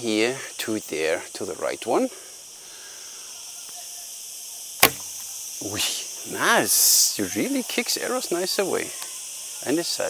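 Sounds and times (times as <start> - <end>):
faint outdoor hiss: 0.0 - 10.0
bow shot crack: 4.8 - 5.3.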